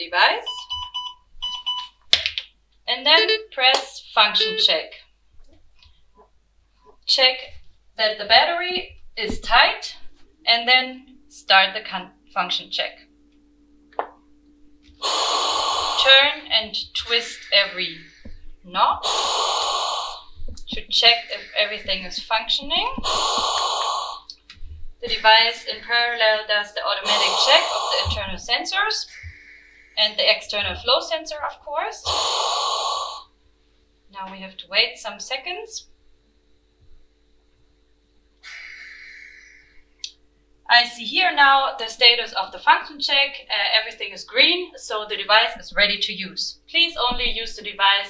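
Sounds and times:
short electronic beeps: 0.5s - 2.0s
ventilator hissing: 6.8s - 13.1s, 14.8s - 34.0s, 38.4s - 41.0s
high whistling tones: 14.9s - 24.4s, 25.1s - 28.4s, 29.0s - 30.3s, 38.4s - 40.1s.

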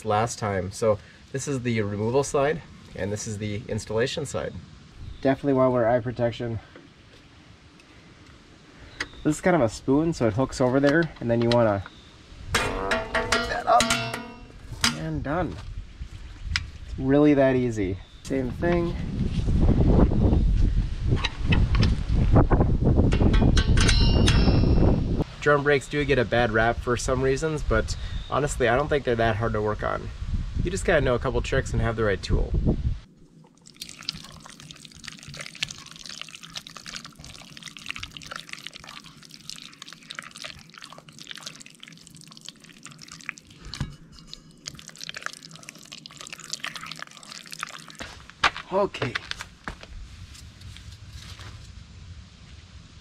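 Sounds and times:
wind buffeting microphone: 18.2s - 25.3s, 26.2s - 33.1s
short high metallic ring: 23.6s - 25.0s.

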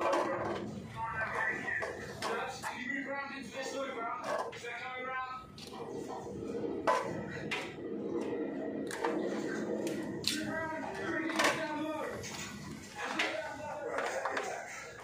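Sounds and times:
voices talking: 0.0s - 15.0s.

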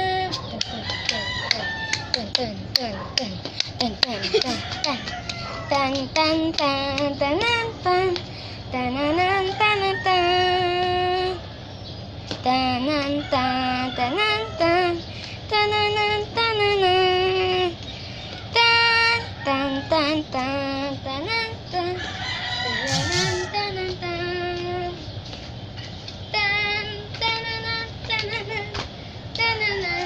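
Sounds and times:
girl singing wordless tune: 0.0s - 25.2s, 26.2s - 30.0s.

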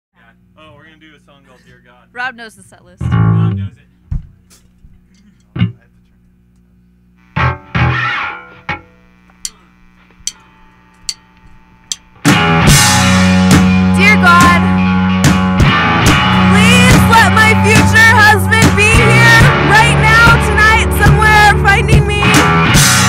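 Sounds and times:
amplifier hum: 0.2s - 23.0s
rock band playing loud: 3.0s - 3.6s, 7.4s - 8.8s, 12.1s - 23.0s
guitar string plucks and strum: 3.0s - 3.7s, 7.4s - 23.0s.

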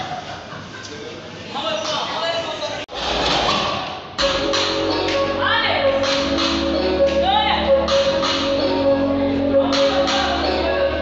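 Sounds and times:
voices in an echoing hall: 0.0s - 11.0s.

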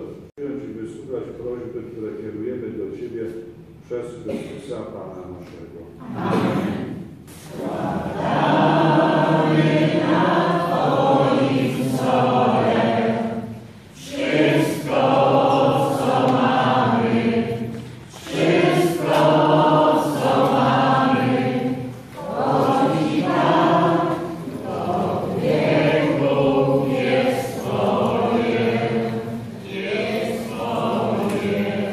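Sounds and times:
voices singing a hymn: 6.0s - 31.9s.

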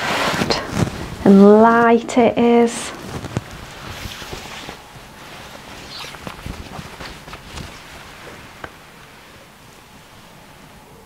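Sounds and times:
satin fabric rustling: 0.0s - 10.8s.

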